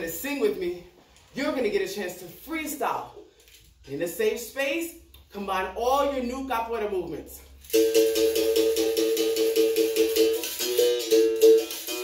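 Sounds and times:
shaker rattle: 7.4 - 12.0.

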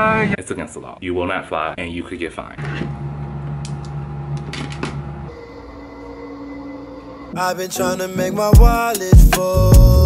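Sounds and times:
machine hum: 2.6 - 7.8.

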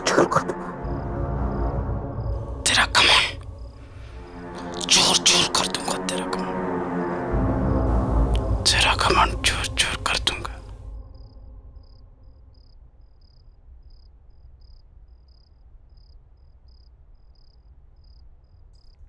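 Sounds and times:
breathy whispering: 0.0 - 0.8, 2.5 - 6.6, 8.3 - 10.8
deep low drone: 0.0 - 13.8
low hum: 0.0 - 14.5
cricket chirping: 0.0 - 19.0.

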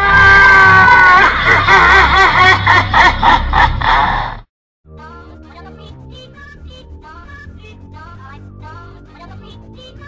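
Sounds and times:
cartoon character laughing: 0.8 - 4.3.

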